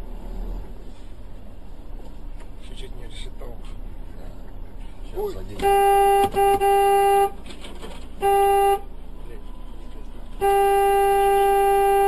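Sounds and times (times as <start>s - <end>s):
car horn honking: 5.5s - 7.4s, 8.1s - 9.0s, 10.3s - 12.0s.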